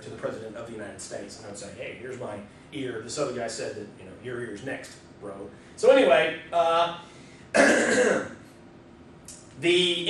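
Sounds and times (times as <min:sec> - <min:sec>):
man clearing his throat: 0:07.6 - 0:08.4.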